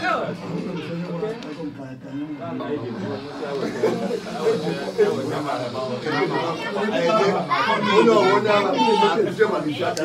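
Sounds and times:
children's voices: 0:05.9 - 0:09.3.

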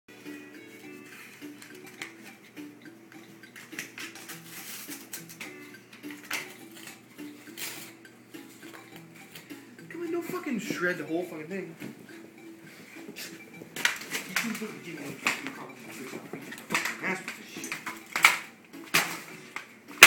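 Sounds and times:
quiet simple melody: 0:00.1 - 0:20.0.

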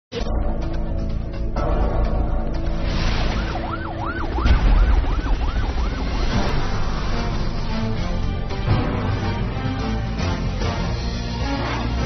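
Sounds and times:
music: 0:00.1 - 0:12.0
siren in fast sweeps: 0:03.2 - 0:07.4.

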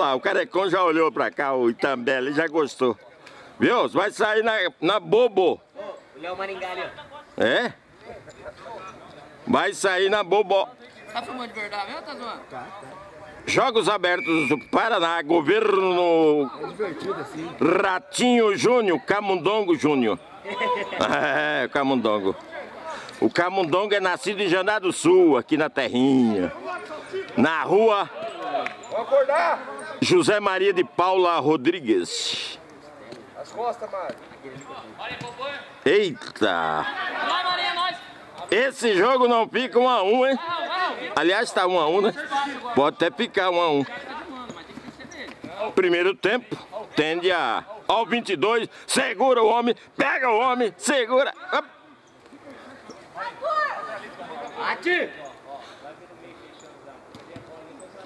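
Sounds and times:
close commentary: 0:00.0 - 0:58.0
men talking and calling out: 0:00.0 - 0:58.0.

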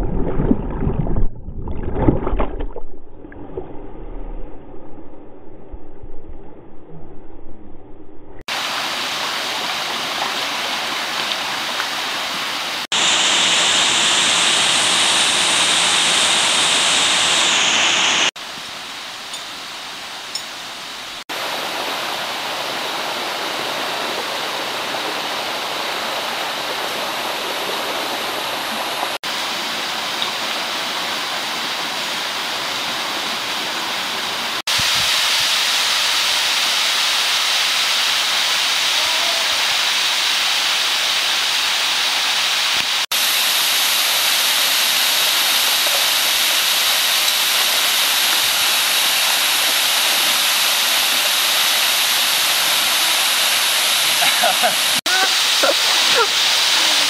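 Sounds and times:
mountain stream rushing: 0:08.5 - 0:57.0
waterfall roaring: 0:08.5 - 0:57.0.

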